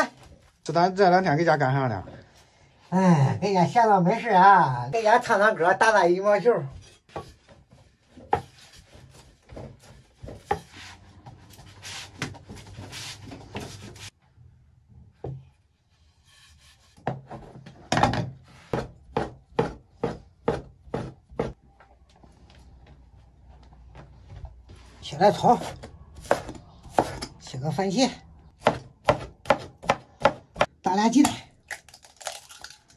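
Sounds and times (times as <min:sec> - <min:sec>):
cleaver chopping on wooden board: 0:28.6 - 0:30.7.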